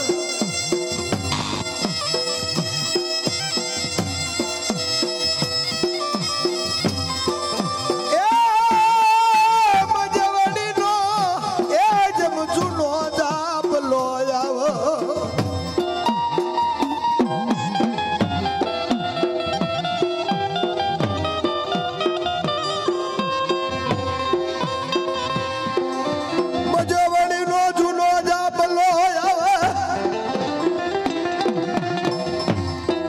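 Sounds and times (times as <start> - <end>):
violin melody: 0.0 - 8.7, 14.9 - 27.7
drum struck with pitch bends: 0.0 - 26.9
harmonium melody: 0.0 - 33.0.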